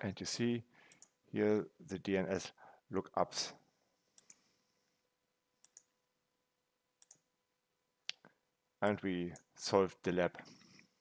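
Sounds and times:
computer mouse clicks: 0.9s - 1.2s, 4.2s - 4.4s, 5.6s - 5.9s, 7.0s - 7.2s.

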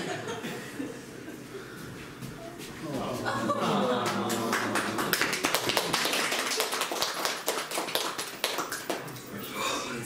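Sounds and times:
audience applauding: 3.6s - 9.3s.

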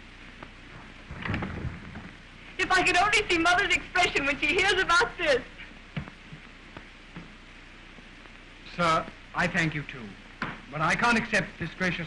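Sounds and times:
film soundtrack hiss: 0.0s - 12.0s
low rumbling thumps: 0.6s - 2.4s.

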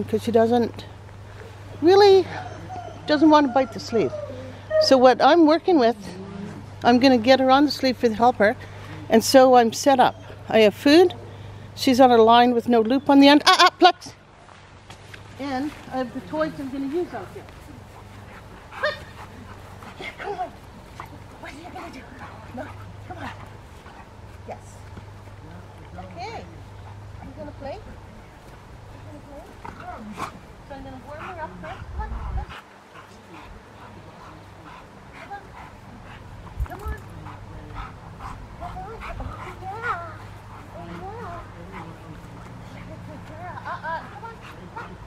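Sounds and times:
dog whining: 2.2s - 5.1s.

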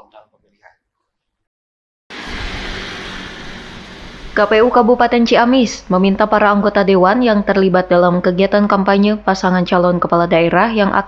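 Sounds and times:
outdoor rushing noise with low rumble: 2.1s - 7.2s.

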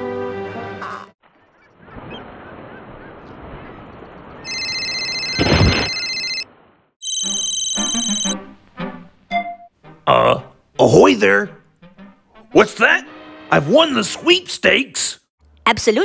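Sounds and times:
electronic phone ring tone: 4.5s - 8.4s.

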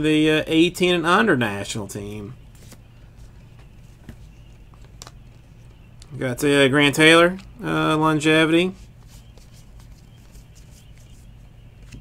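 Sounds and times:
low steady hum: 0.0s - 12.0s
trading cards being flipped: 2.5s - 2.9s, 8.8s - 12.0s.

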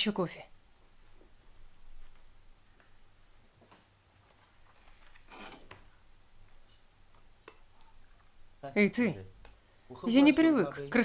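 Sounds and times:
soft rustle: 0.7s - 8.4s.

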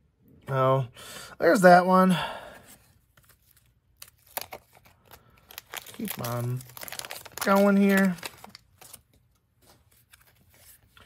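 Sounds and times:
cards rustling and ticking: 2.7s - 11.0s.

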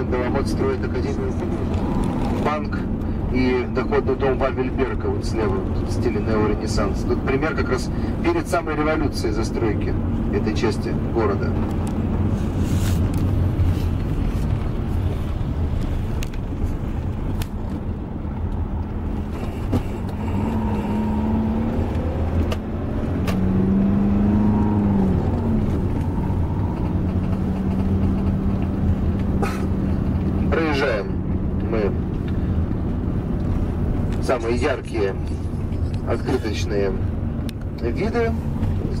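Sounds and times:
road noise: 0.0s - 39.0s
vehicle engine: 0.0s - 39.0s.

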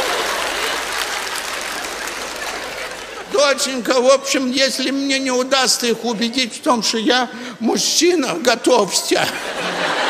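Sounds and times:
audience applause: 0.0s - 3.7s.

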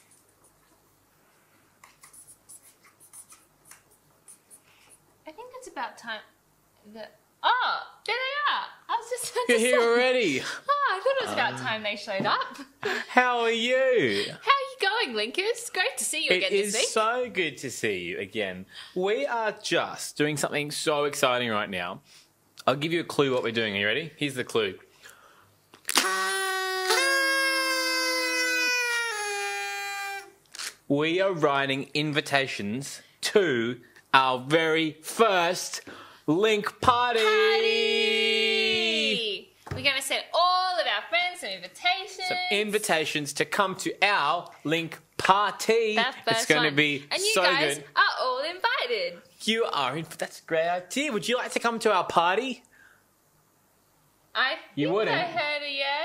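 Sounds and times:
pens scratching on paper: 1.8s - 4.6s
party blowers tooting: 25.9s - 30.7s.

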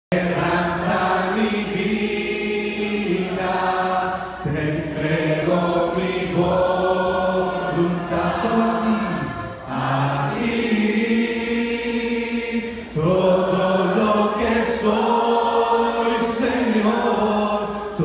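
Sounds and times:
congregation singing worship song: 0.1s - 18.0s.

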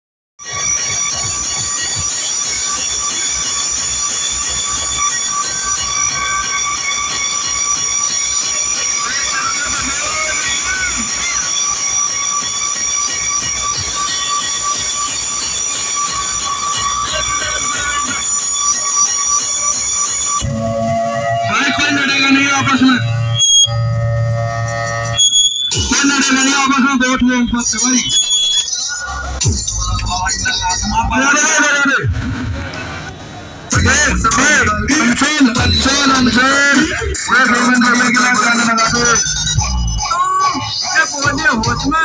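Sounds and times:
shrill alarm-like electronic tone: 0.4s - 32.0s, 33.7s - 42.0s.

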